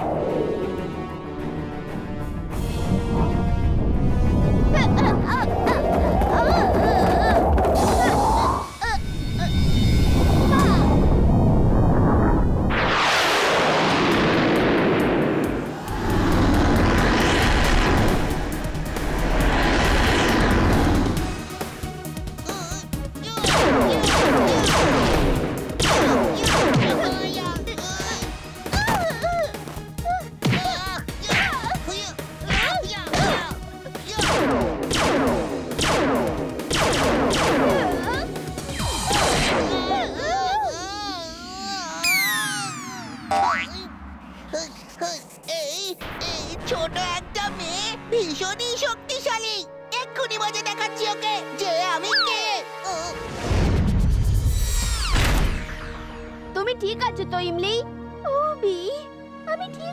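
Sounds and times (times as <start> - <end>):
low rumble: 9.6 - 21.5
rising whoosh: 9.6 - 21.5.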